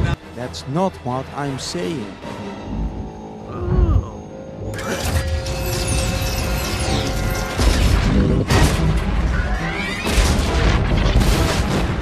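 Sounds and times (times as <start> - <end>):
action soundtrack music: 0.0 - 12.0.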